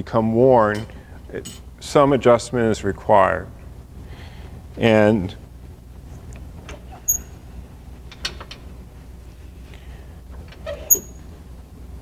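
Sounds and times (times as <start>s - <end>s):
brief high squeak: 7.0s - 7.3s, 10.7s - 11.2s.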